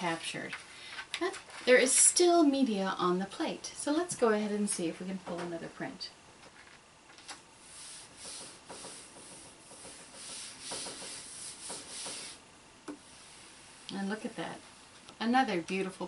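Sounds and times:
hands rubbing paper: 7.6 - 12.4.

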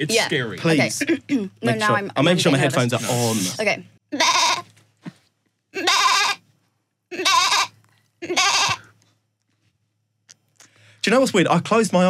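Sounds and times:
woman bleating like a goat: 4.1 - 4.6, 5.8 - 6.4, 7.1 - 8.8.

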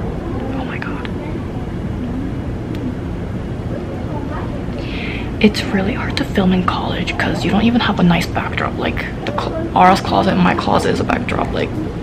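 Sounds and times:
faint voices: 0.0 - 12.0
low outdoor rumble: 0.0 - 12.0.

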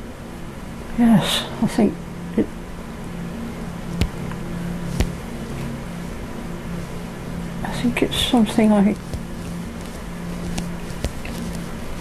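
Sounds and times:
low hum with faint hiss: 0.0 - 12.0.

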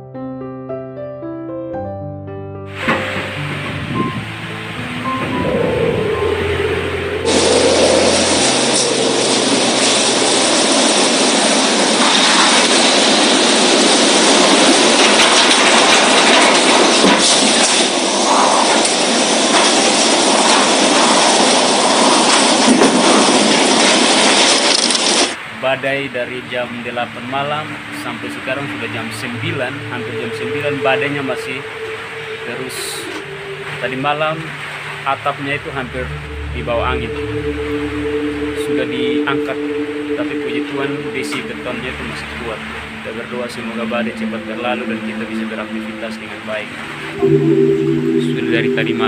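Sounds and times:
piano music: 0.0 - 25.0, 26.2 - 49.0
roaring wind with driving rain: 2.8 - 48.2
rising wind noise: 2.8 - 49.0.

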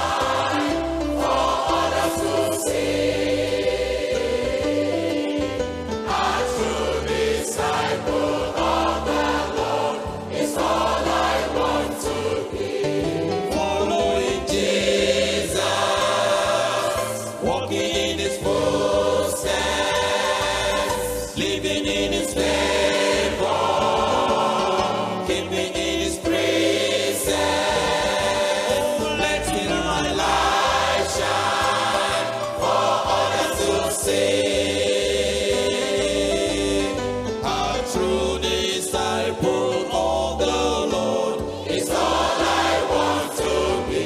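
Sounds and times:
choir singing gospel song: 0.0 - 44.0
instrumental accompaniment: 0.0 - 44.0.

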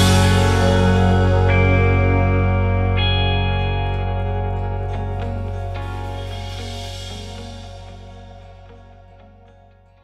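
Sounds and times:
electric guitar sustained chords: 0.0 - 10.0.

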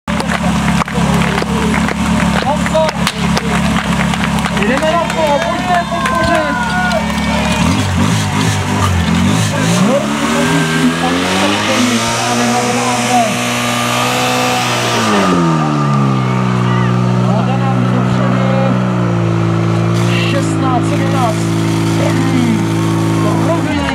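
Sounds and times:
crowd voices and shouting: 0.1 - 23.9
pump engine revving: 0.1 - 23.9.

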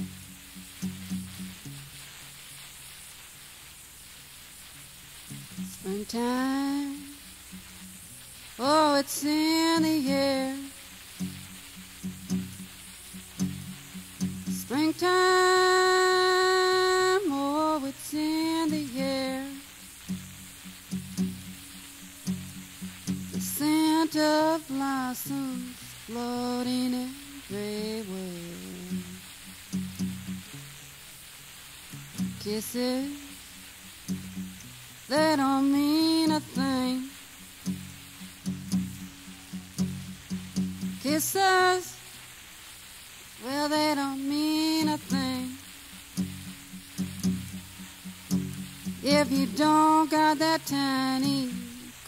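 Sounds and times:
acoustic guitar picking: 0.0 - 2.4, 5.2 - 31.0, 31.8 - 42.0, 43.7 - 52.0.

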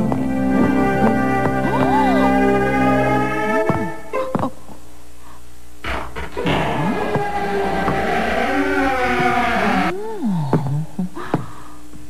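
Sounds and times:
large door creaking open: 5.8 - 9.9.

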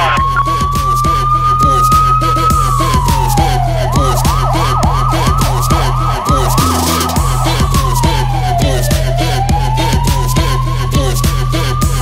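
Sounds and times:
electronic police siren: 0.0 - 12.0
hip hop music with steady beat: 0.0 - 12.0.

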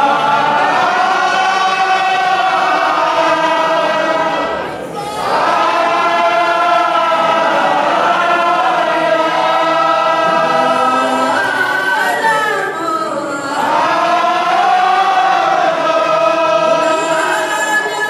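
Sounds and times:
men chanting together: 0.0 - 12.2, 13.4 - 17.5
voice on a microphone: 0.0 - 14.2.

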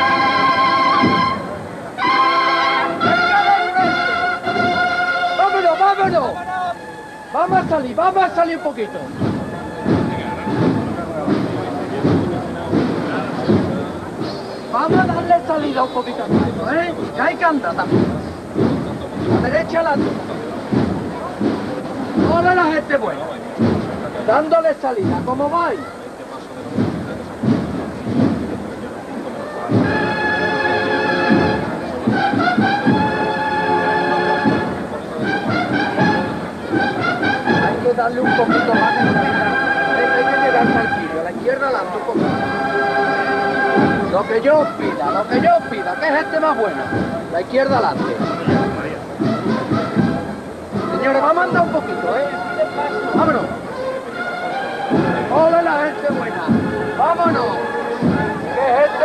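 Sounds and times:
brass band playing march: 0.0 - 59.0
murmur of crowd: 0.0 - 59.0
feet shuffling in step: 41.9 - 59.0.

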